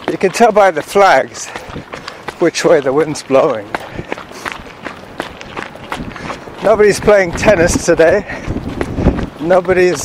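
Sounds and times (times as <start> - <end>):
runners' footfalls on path: 0.0 - 10.0.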